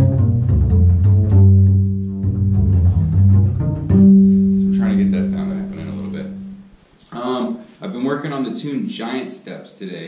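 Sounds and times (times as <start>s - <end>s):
double bass plucked notes: 0.0s - 6.8s.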